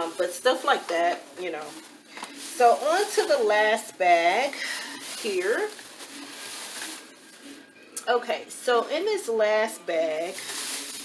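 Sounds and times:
plastic bag rustling: 0:00.0 - 0:07.7, 0:10.1 - 0:11.0.

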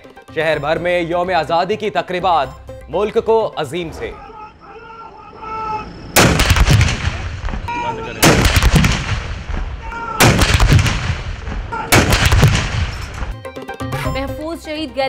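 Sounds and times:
rolling echo: 0:04.0 - 0:13.4
artillery guns firing: 0:06.2 - 0:13.4.

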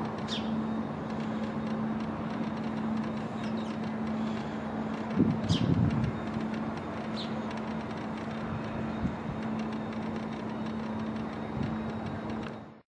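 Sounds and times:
vehicle road noise: 0:00.0 - 0:12.8
high bird chirp: 0:00.3 - 0:00.6, 0:05.4 - 0:05.8.

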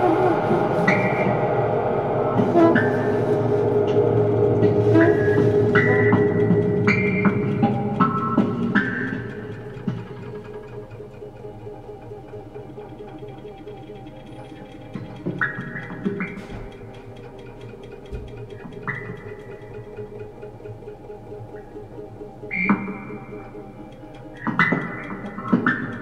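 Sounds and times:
low buzzing fluttering drone: 0:00.0 - 0:26.0.

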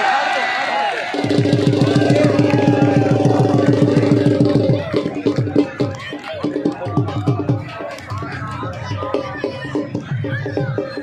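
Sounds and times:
crowd voices: 0:00.0 - 0:11.0
fast steady drum beat: 0:01.1 - 0:11.0.

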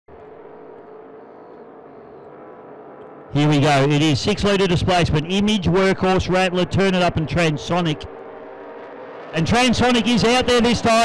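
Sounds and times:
distant race boat engines: 0:00.1 - 0:11.0.

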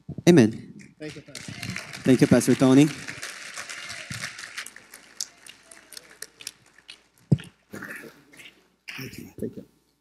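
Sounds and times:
congregation clapping lightly: 0:00.3 - 0:09.2.

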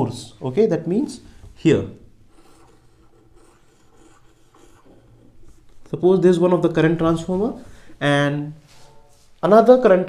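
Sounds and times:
marker pen rubbing on whiteboard: 0:02.2 - 0:05.9.

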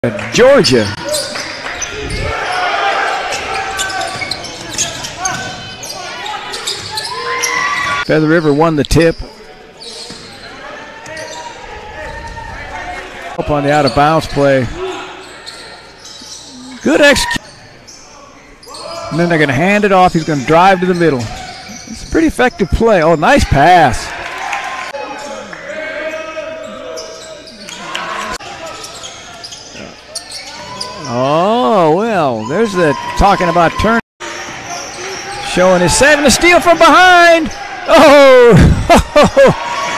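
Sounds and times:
crowd voices: 0:00.0 - 0:39.9
shoe squeaks: 0:03.3 - 0:08.0, 0:09.0 - 0:12.4, 0:14.9 - 0:19.4, 0:20.1 - 0:23.3, 0:26.6 - 0:27.9, 0:28.5 - 0:31.3.

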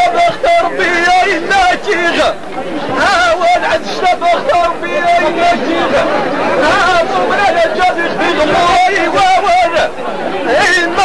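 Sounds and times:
voices singing a chant: 0:00.0 - 0:11.0.

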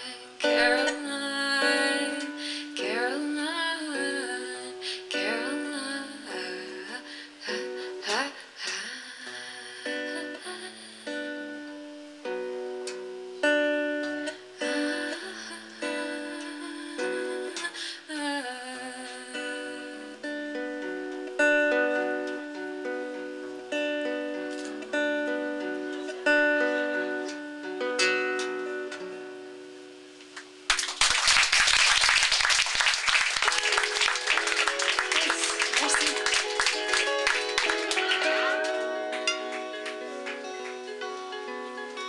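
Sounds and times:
acoustic guitar fingerpicked: 0:00.0 - 0:30.7, 0:33.4 - 0:42.0
fast loud guitar strumming: 0:33.4 - 0:41.4.

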